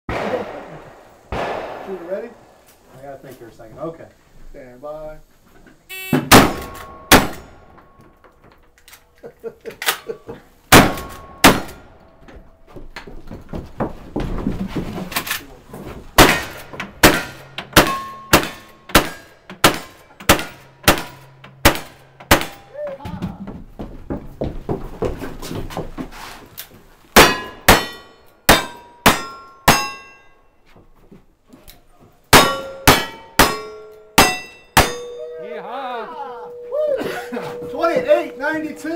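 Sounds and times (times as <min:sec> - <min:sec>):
gunshots: 0:00.1 - 0:02.6, 0:06.3 - 0:07.6, 0:10.7 - 0:11.8, 0:16.2 - 0:22.6
metallic ring of steel target: 0:16.3 - 0:22.7, 0:27.2 - 0:30.3, 0:32.4 - 0:38.9.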